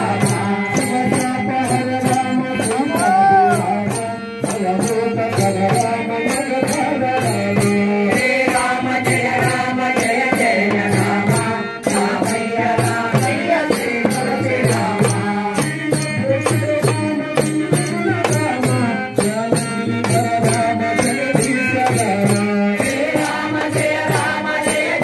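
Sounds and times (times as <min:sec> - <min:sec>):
small hand drum: 0:00.0 - 0:25.0
tabla: 0:00.0 - 0:25.0
group chanting in unison: 0:22.2 - 0:25.0.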